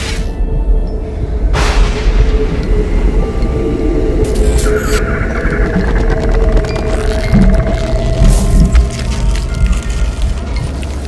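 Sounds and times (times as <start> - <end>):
deep rumbling drone: 0.0 - 11.0.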